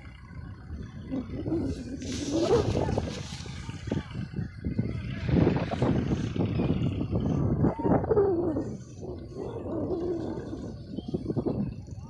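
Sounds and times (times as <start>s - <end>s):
faint distant voices: 0.0s - 12.0s
wind buffeting microphone: 0.0s - 12.0s.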